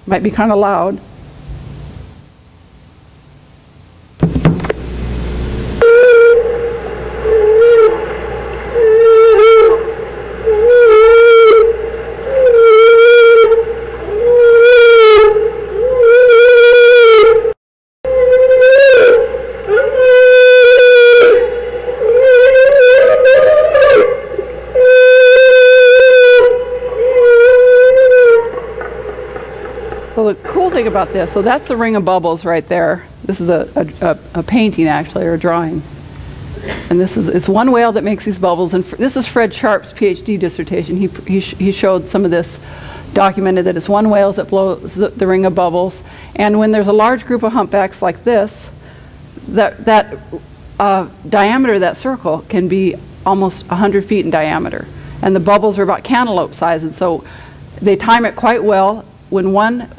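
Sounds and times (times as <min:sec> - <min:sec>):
whale calls: 0:05.8 - 0:32.2.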